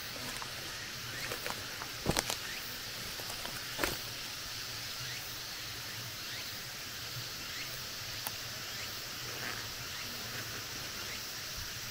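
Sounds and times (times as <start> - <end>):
steady high hiss: 0.0 - 11.9.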